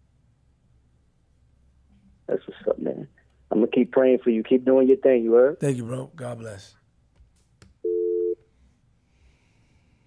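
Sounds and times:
telephone hang-up tone: 0:07.8 - 0:08.4.

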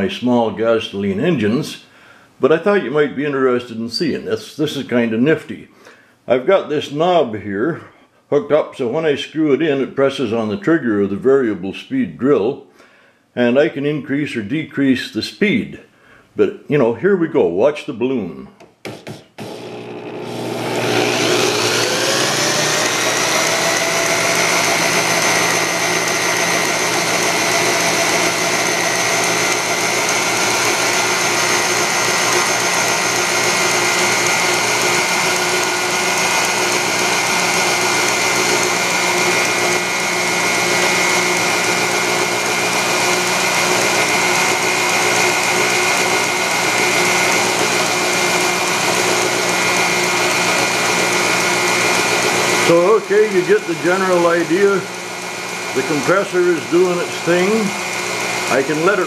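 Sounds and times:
electric drill whining: 0:18.9 - 0:59.0.

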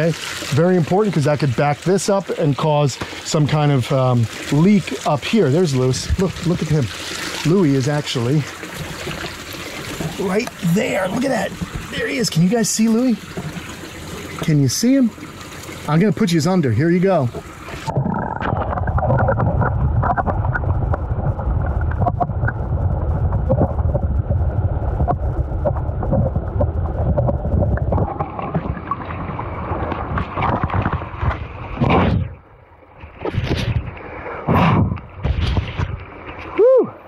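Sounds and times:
water splashes: 0:00.0 - 0:37.0
underwater water rumble: 0:17.1 - 0:36.6.

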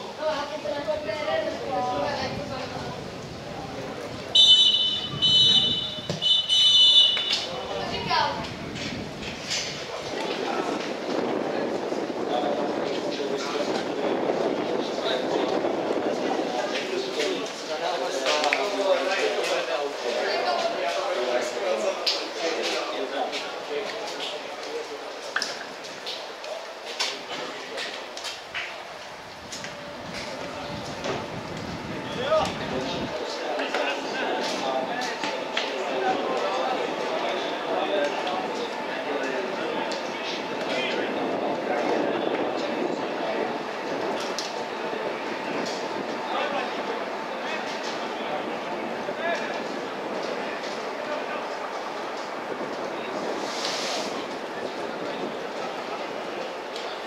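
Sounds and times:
outdoor noise: 0:00.0 - 0:57.0
distant players calling: 0:04.3 - 0:08.4.

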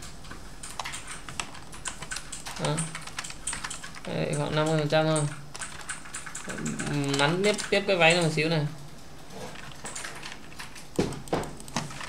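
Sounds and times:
computer keyboard typing: 0:00.6 - 0:08.4, 0:09.6 - 0:12.0
person speaking: 0:02.5 - 0:03.1, 0:04.0 - 0:05.5, 0:06.4 - 0:08.9.

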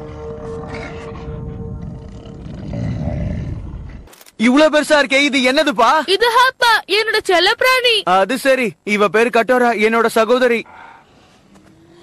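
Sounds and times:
creature groaning roar: 0:00.6 - 0:04.1.

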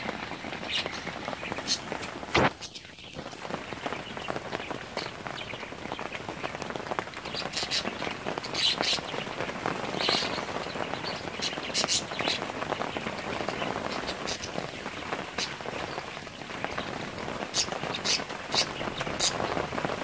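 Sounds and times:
louder raindrop hits: 0:00.0 - 0:20.0
rain pattering: 0:00.0 - 0:20.0.

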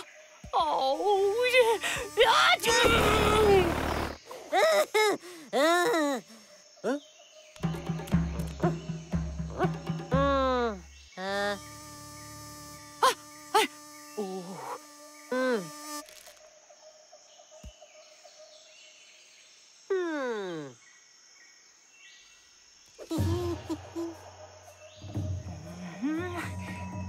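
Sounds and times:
cartoon bee buzzing: 0:00.8 - 0:04.6, 0:08.1 - 0:16.4, 0:23.0 - 0:24.6.

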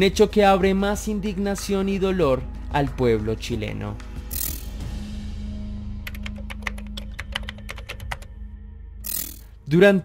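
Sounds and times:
keyboard typing clicks: 0:06.1 - 0:08.3.

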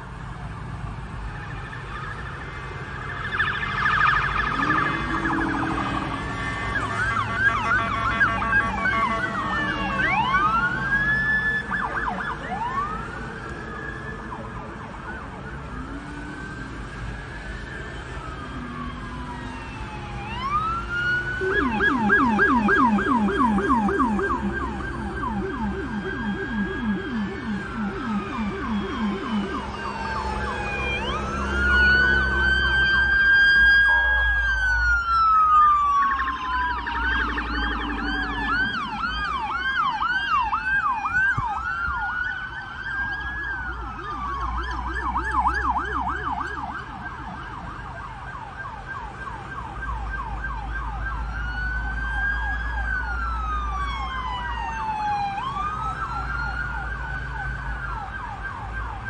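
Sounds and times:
police sirens wailing and yelping: 0:00.0 - 0:59.0
road traffic rumble: 0:00.0 - 0:59.0.

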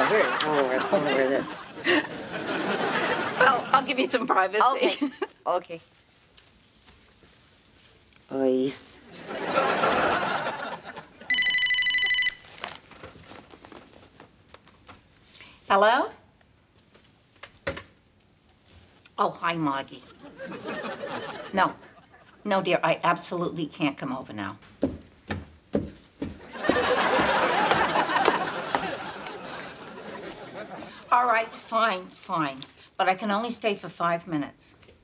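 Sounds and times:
studio audience laughter: 0:00.0 - 0:03.9, 0:09.1 - 0:11.3, 0:20.1 - 0:22.4, 0:26.4 - 0:31.6
telephone electronic trilling ring: 0:11.3 - 0:12.4
footsteps down a staircase: 0:24.6 - 0:29.0.

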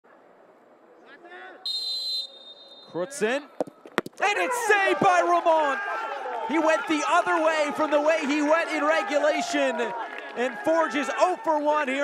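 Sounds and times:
low stadium ambience: 0:00.0 - 0:12.0
referee's whistle blast: 0:01.6 - 0:03.1.

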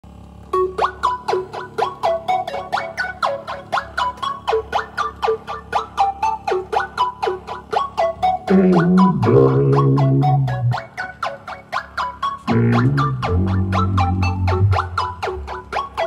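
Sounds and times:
plucky synthesizer notes: 0:06.6 - 0:16.0.

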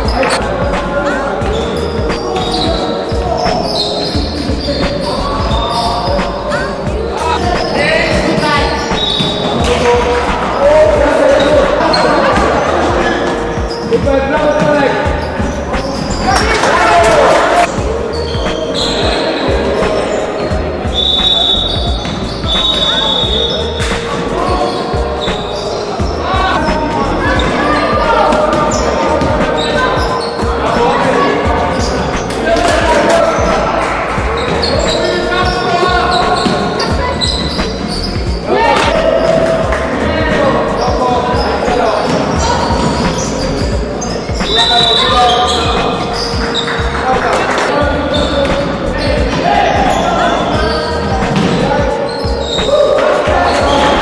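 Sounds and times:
players shouting: 0:00.0 - 0:54.0.

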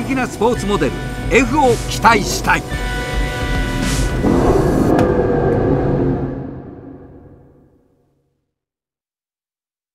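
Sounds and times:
background music with held tones: 0:00.0 - 0:05.8
low rumble: 0:00.9 - 0:08.0.

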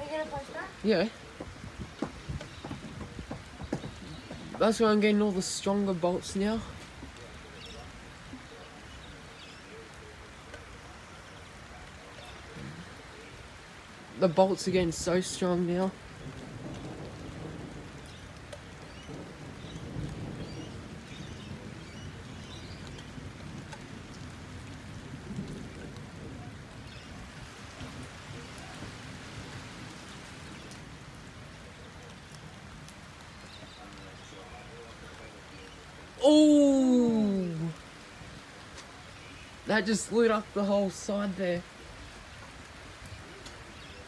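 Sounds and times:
low rumble of thunder: 0:00.0 - 0:10.4, 0:11.1 - 0:36.1
rain falling steadily: 0:00.0 - 0:44.0.

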